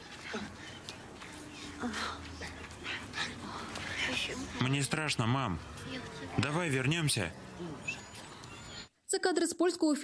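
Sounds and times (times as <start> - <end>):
people breathing: 0.0 - 4.7.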